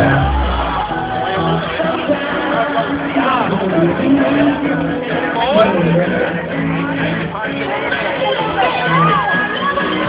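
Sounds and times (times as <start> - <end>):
music over loudspeakers: 0.0 - 10.0
voices: 0.0 - 10.0.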